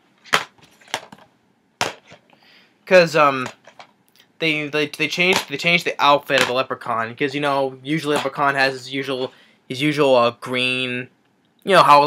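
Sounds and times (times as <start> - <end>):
person speaking: 2.8 - 12.0.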